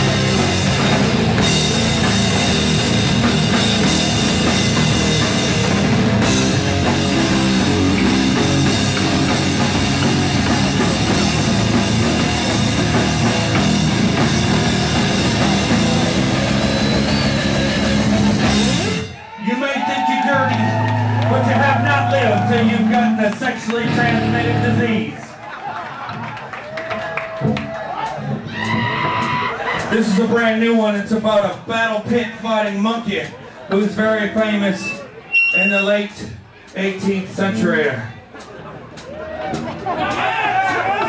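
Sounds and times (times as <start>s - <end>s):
electric guitars: 0.0s - 19.2s, 20.4s - 25.0s
drum kit: 0.0s - 19.4s, 20.1s - 25.0s, 26.9s - 41.0s.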